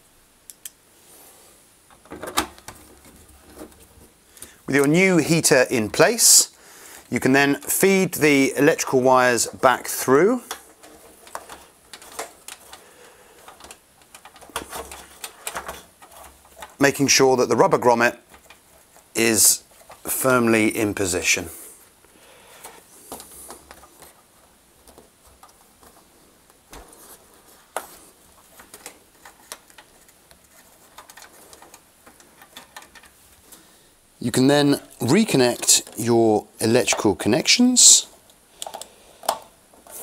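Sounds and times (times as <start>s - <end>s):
rustling of wires: 0.6s - 40.0s.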